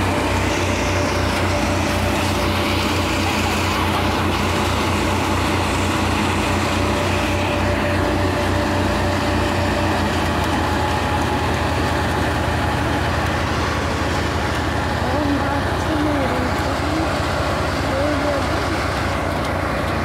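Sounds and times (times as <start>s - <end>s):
diesel engine humming: 0.0s - 20.0s
threshing drum spinning: 0.0s - 20.0s.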